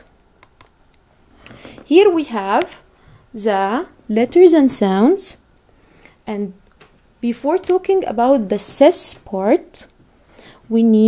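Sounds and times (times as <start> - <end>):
computer mouse clicks: 0.4 - 0.7
woman speaking: 1.9 - 5.4, 6.3 - 6.6, 7.2 - 9.9, 10.7 - 11.0.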